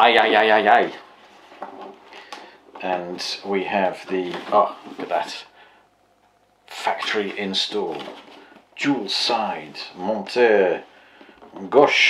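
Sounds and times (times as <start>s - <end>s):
man talking: 0.0s - 1.1s, 2.8s - 5.6s, 6.7s - 8.2s, 8.8s - 10.9s, 11.5s - 12.0s.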